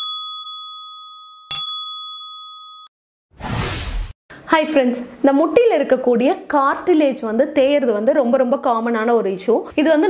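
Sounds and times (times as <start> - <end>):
electronic ding chimes: 0.0 - 2.9
short whoosh: 3.4 - 4.2.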